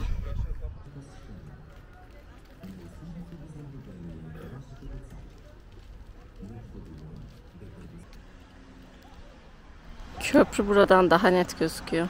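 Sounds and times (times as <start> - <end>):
distant people talking: 0.0 - 12.0
low outdoor rumble: 0.0 - 12.0.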